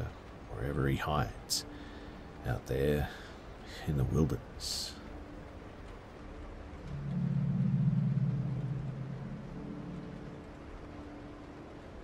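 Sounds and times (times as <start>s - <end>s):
dark ambient droning music: 0.0s - 12.0s.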